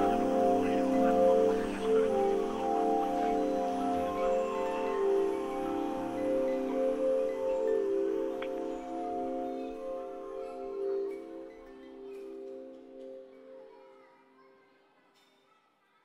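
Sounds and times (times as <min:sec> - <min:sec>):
ambient drone music with bell tones: 0:00.0 - 0:13.4.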